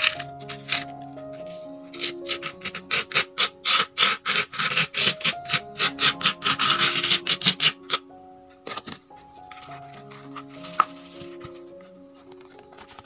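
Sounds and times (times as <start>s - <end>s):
plastic spoon scraping sand: 0.0s - 1.0s, 1.9s - 8.0s
soft music with plucked notes: 0.0s - 13.0s.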